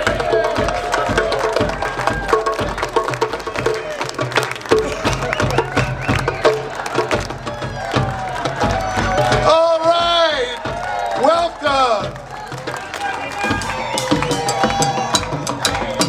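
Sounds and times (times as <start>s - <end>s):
drum kit beat: 0.0s - 16.0s
live band music: 0.0s - 16.0s.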